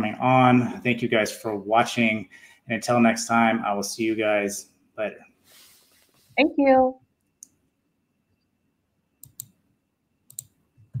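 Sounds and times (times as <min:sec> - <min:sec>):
small sharp clicks: 0:09.2 - 0:09.6, 0:10.3 - 0:10.6.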